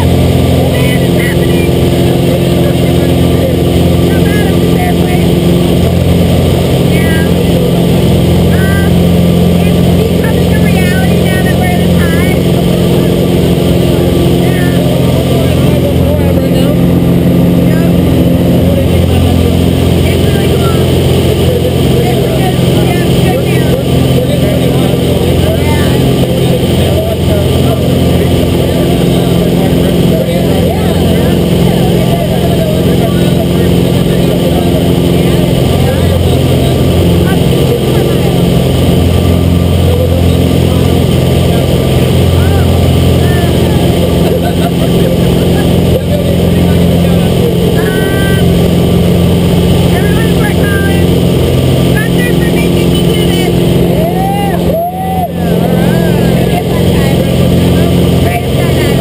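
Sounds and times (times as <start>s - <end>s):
faint voices: 0.0s - 59.0s
plane engine and propeller droning: 0.0s - 59.0s.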